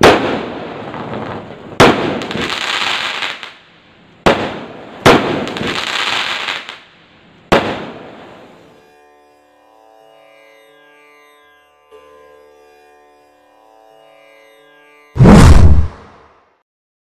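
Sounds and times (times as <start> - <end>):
firework bangs: 0.0 - 3.4, 4.2 - 6.6, 7.5 - 8.0, 15.2 - 16.1
firework crackle: 0.0 - 3.6, 4.3 - 6.9.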